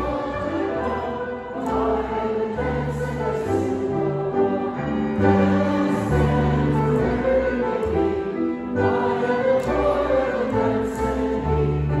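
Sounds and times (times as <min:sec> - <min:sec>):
choir singing a hymn: 0:00.0 - 0:12.0
piano: 0:00.0 - 0:12.0
upright double bass: 0:00.0 - 0:12.0.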